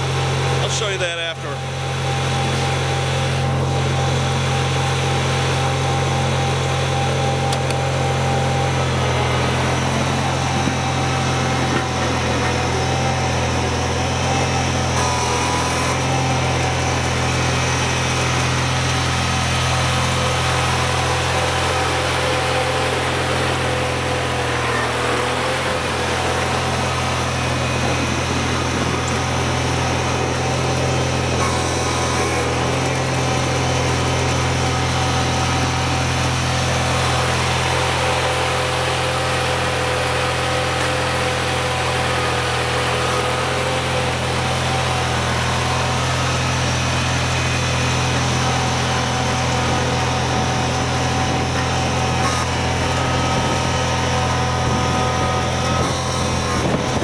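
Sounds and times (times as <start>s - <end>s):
tractor engine running: 0.0s - 57.0s.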